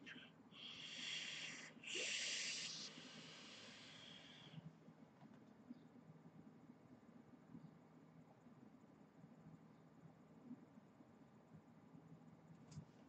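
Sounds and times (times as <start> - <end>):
airy hiss of vaping drag: 0.6 - 4.4.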